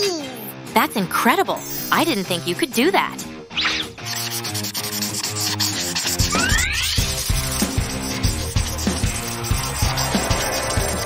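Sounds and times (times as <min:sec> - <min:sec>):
background music: 0:00.0 - 0:11.0
marker tip scratching hard surface: 0:03.7 - 0:11.0.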